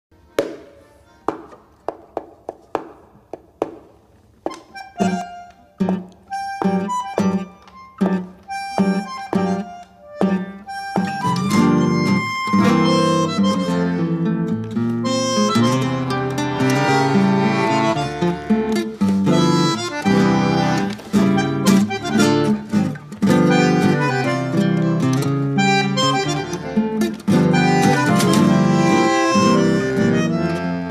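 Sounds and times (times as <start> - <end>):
bandoneon reed notes: 4.5 - 14.2, 15.0 - 30.9
plucked guitar chords: 4.5 - 30.9.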